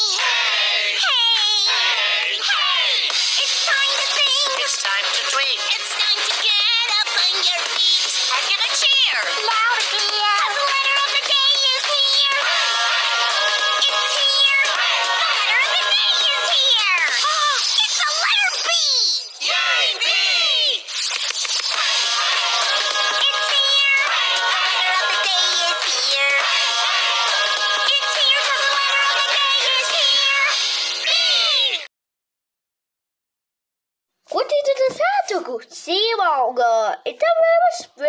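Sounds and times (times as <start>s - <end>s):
high-pitched singing over music: 0.0s - 31.9s.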